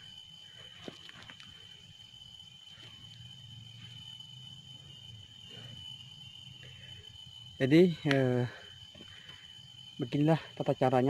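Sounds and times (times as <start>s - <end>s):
insect droning: 0.0s - 11.0s.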